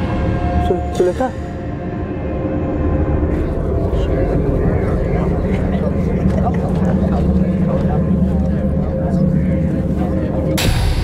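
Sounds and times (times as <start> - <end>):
faint indistinct voices: 3.2 - 11.0.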